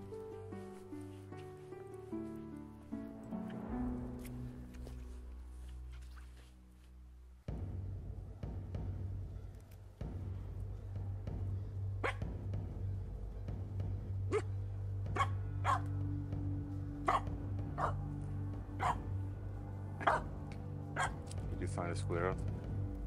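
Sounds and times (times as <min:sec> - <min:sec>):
background music: 0:00.0 - 0:23.0
dog barking: 0:12.0 - 0:12.2, 0:14.3 - 0:14.5, 0:15.1 - 0:15.9, 0:17.1 - 0:18.0, 0:18.8 - 0:19.1, 0:20.0 - 0:20.3, 0:21.0 - 0:21.2.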